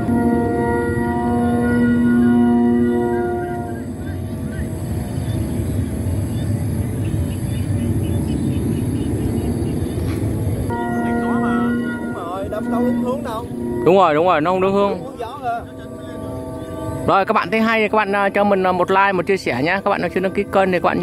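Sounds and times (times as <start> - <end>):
kite flutes chord: 0.0 - 21.0.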